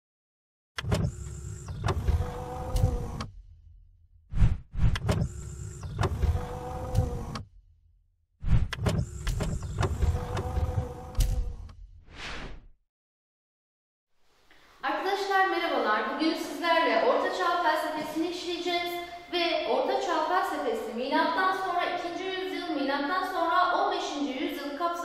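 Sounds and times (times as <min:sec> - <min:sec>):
mechanical clicks and clunks: 0:00.8 - 0:03.4, 0:04.8 - 0:07.5, 0:08.6 - 0:11.8
motorised mechanism whirring: 0:00.8 - 0:03.4, 0:04.8 - 0:07.6, 0:08.5 - 0:11.8
whoosh: 0:04.3 - 0:05.0.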